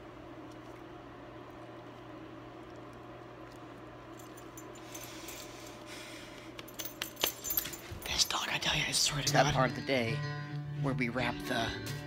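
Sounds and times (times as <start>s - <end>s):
low room hum: 0.0s - 12.0s
metallic jingling and clicks: 6.6s - 8.6s
man's voice: 8.6s - 11.9s.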